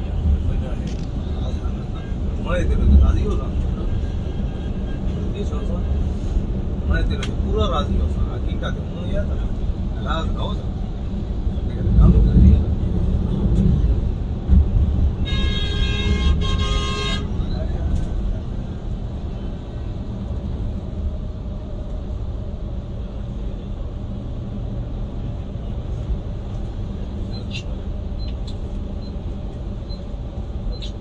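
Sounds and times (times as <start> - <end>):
coach engine and road rumble: 0.0 - 31.0
vehicle horn: 15.2 - 17.4.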